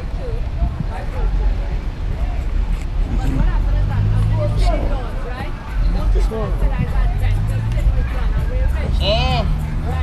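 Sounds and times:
street traffic: 0.0 - 10.0
voices talking: 0.0 - 10.0.

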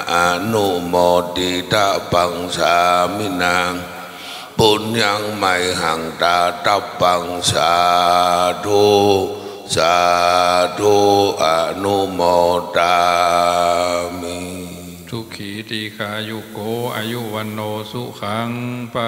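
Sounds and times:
monk chanting into a microphone: 0.0 - 19.0.

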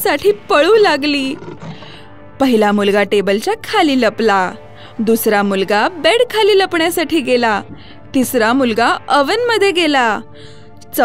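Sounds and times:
cartoon wolf roar: 1.2 - 2.0.

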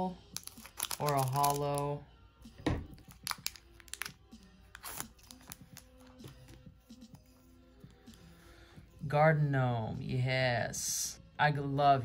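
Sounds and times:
faint background music: 0.0 - 12.0
foil wrapper crinkling: 0.3 - 1.8, 3.0 - 6.2.

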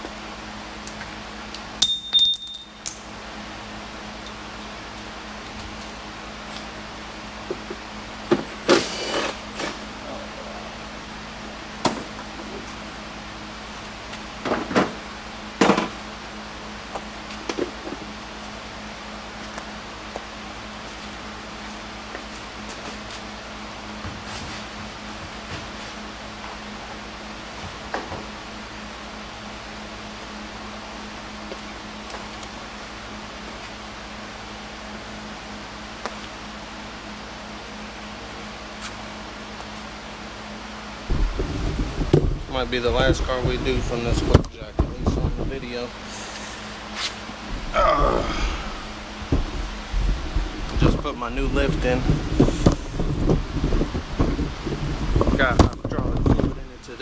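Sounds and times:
steady low hum: 0.0 - 57.0
clanking metal tools: 1.8 - 3.0.

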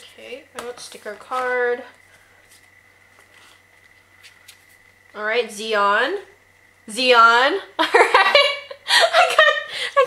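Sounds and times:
paper pages rustling: 2.5 - 4.9.

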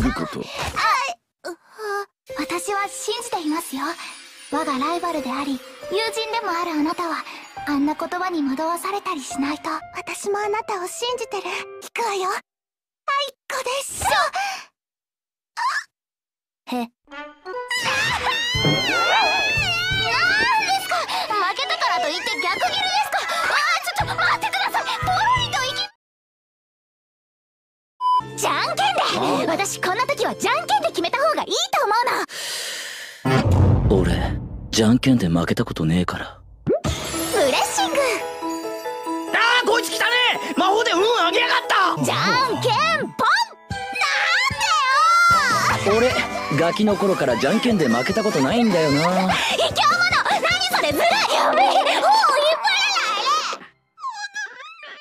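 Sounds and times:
background music: 2.3 - 12.4, 17.1 - 25.9, 28.2 - 31.6, 33.3 - 53.4
girls squealing: 17.7 - 22.6, 51.1 - 55.0
high-pitched whimpering cry: 54.0 - 55.0.

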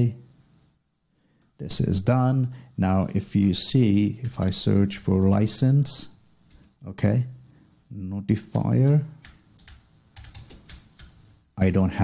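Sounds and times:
keyboard typing: 4.1 - 5.5, 8.4 - 11.3.

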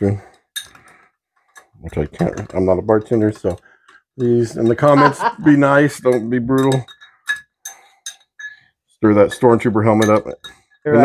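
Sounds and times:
spoon clinking against glass and ice: 0.5 - 8.7, 9.3 - 11.0.

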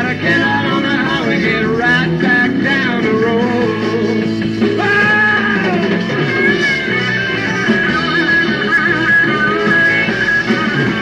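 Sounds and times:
electric guitar lead: 0.0 - 11.0
rock band playing: 0.0 - 11.0.

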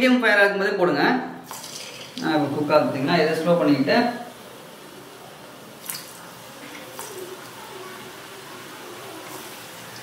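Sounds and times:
dough sizzling in hot oil: 1.2 - 10.0.

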